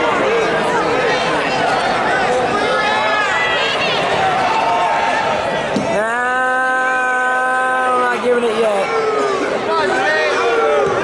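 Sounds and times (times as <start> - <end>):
voices shouting: 0.0 - 11.0
long drawn-out shout: 0.4 - 11.0.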